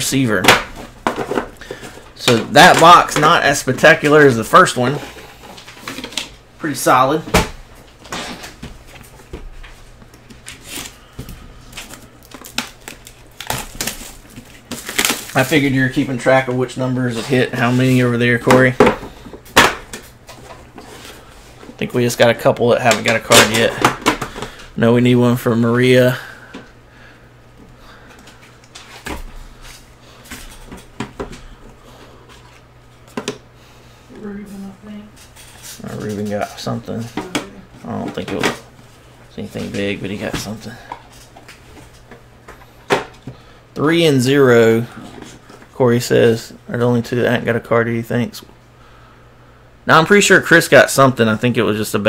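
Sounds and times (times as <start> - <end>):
cardboard crinkling and rustling: 11.7 - 16.4.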